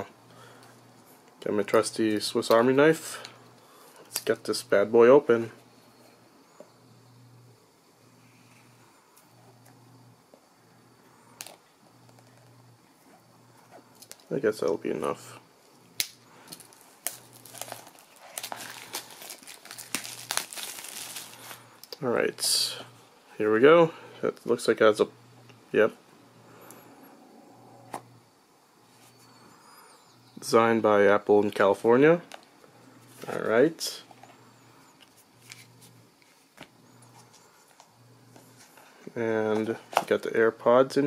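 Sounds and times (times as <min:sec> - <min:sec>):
plastic shrink wrap crinkling and tearing: 0:16.5 - 0:21.9.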